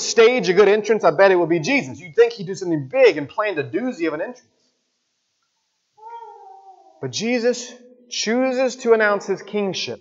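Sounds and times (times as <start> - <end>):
faint high-pitched meow-like cry: 6.0 - 7.0.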